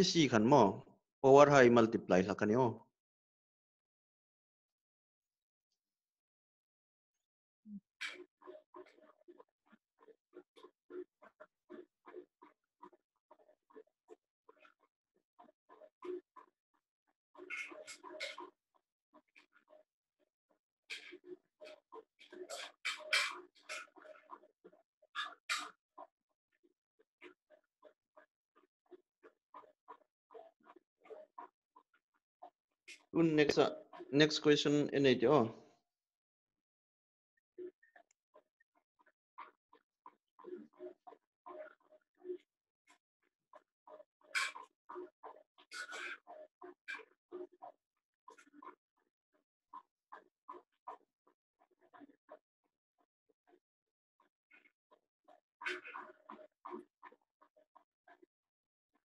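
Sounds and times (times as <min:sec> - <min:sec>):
marker squeaking on whiteboard: 0:22.5 - 0:24.0.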